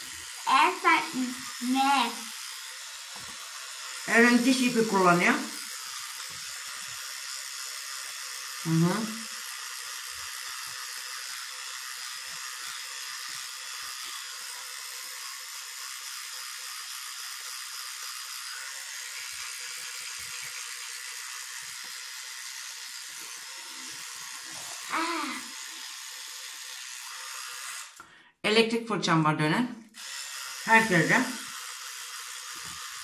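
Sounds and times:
electric toothbrush buzzing: 0.0s - 28.2s, 29.8s - 33.0s.

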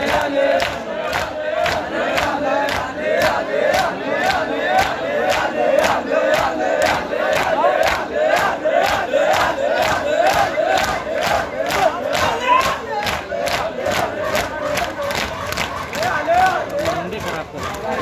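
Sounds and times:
men chanting: 0.0s - 18.0s.

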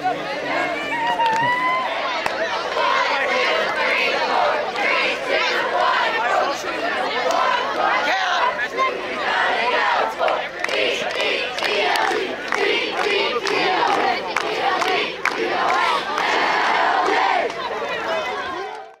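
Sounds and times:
crowd shouting and yelling: 0.0s - 19.0s.

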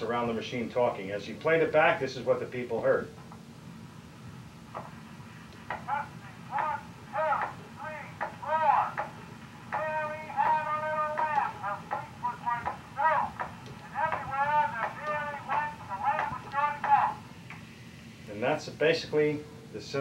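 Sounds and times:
tinny recorded man's voice: 5.8s - 9.1s, 9.7s - 17.2s, 18.3s - 20.0s.

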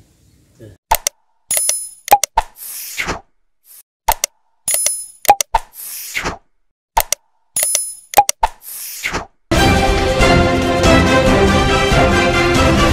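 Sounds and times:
mouse clicks: 0.9s - 2.5s, 4.1s - 5.7s, 7.0s - 8.6s.

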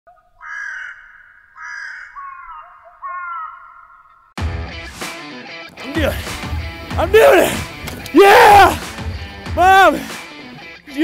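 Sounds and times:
bird calling: 0.1s - 4.4s.

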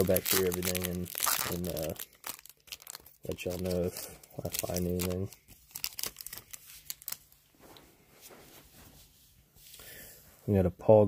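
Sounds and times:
card pack wrapper crinkling: 0.0s - 7.4s
cards rustling: 0.0s - 7.4s.

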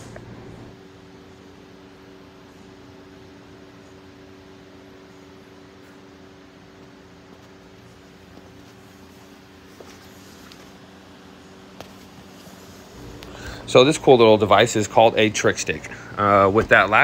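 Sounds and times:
low even hum: 0.0s - 17.0s.

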